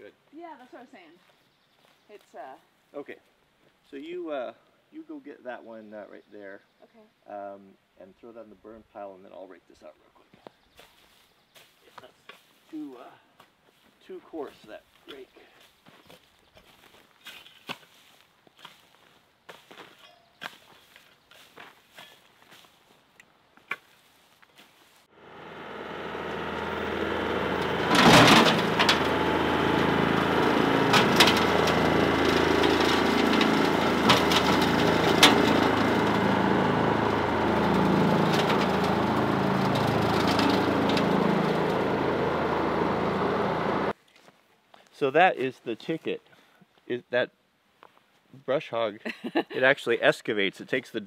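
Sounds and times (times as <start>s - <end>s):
tractor with rotary cutter: 25.1s - 44.0s
rake scraping soil: 26.5s - 43.9s.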